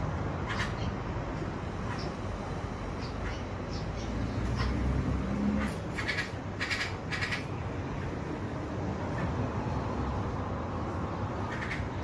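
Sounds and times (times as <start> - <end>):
bird harsh calls: 0.4 - 1.1, 1.8 - 2.3, 3.0 - 7.6, 11.4 - 12.0.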